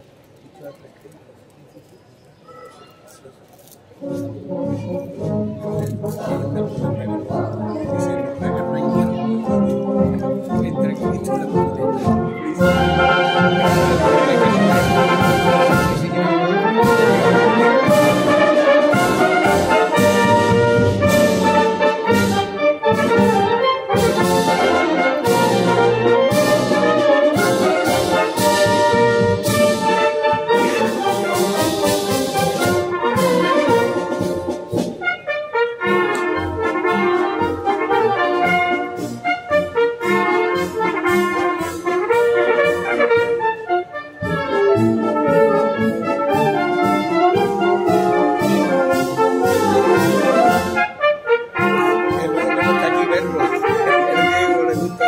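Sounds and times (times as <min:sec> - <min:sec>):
military band playing: 0:04.0 - 0:55.0
trumpets and trombones: 0:04.0 - 0:55.0.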